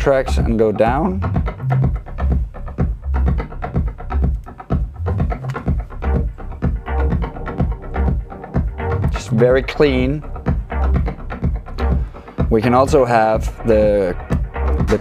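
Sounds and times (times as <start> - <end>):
bass: 0.0 - 15.0
kick drum: 0.0 - 15.0
light percussion ticking: 1.2 - 9.2.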